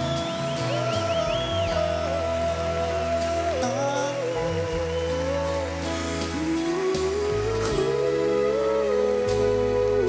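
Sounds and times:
live concert band music: 0:00.0 - 0:10.0.

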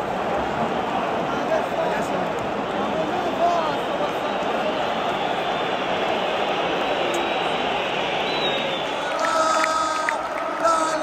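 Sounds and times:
stadium crowd shouting and chanting: 0:00.0 - 0:11.0.

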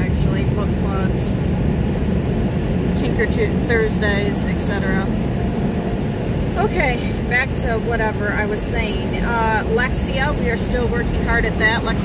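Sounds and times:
car wash rumbling and rushing: 0:00.0 - 0:12.0.

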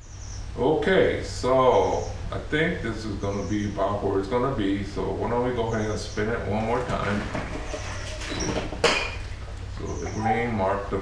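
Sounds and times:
ceramic pot squeak: 0:07.2 - 0:10.6.

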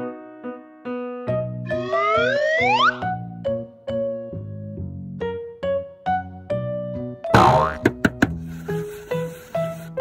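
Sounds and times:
cheerful children's music: 0:01.4 - 0:04.4
cartoon boing sound effect: 0:07.3 - 0:08.0.

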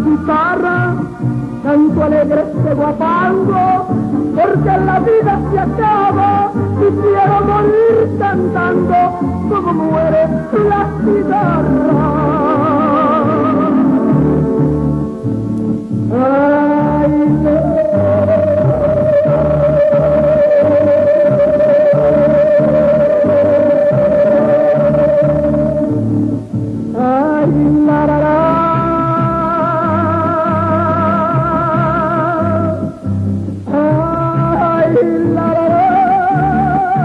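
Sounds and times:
woman singing: 0:00.0 - 0:14.3, 0:16.1 - 0:25.9, 0:26.9 - 0:33.0, 0:33.7 - 0:37.0
instrumental accompaniment: 0:00.0 - 0:37.0
ranchera music with mariachi: 0:00.0 - 0:37.0.

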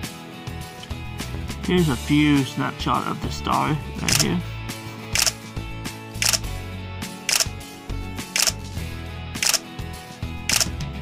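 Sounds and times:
background music: 0:00.0 - 0:11.0
camera shutter click: 0:04.1 - 0:04.3, 0:05.2 - 0:05.4, 0:06.2 - 0:06.5, 0:07.3 - 0:07.5, 0:08.4 - 0:08.6, 0:09.4 - 0:09.6, 0:10.5 - 0:10.8.

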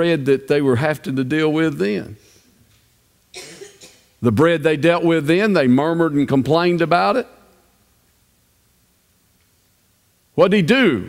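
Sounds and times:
person coughing: 0:03.3 - 0:04.1.

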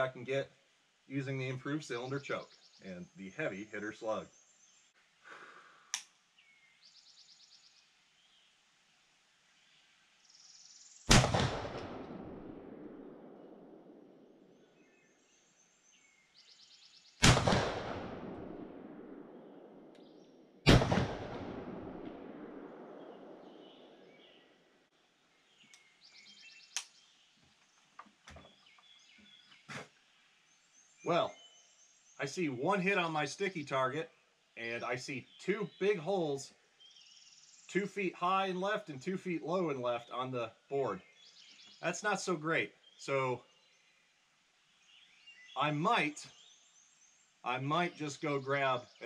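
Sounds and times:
shotgun shots echoing: 0:11.1 - 0:14.3, 0:17.2 - 0:19.9, 0:20.6 - 0:24.2.

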